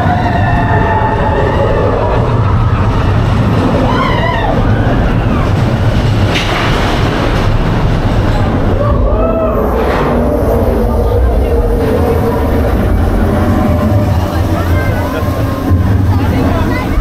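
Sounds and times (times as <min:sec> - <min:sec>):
roller coaster rumbling on track: 0:00.0 - 0:17.0.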